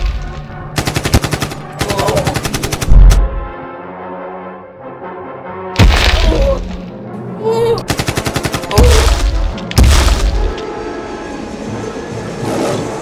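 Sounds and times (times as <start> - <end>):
machine-gun fire: 0.8 - 3.2, 7.9 - 10.6
loud deep explosions: 8.8 - 10.6.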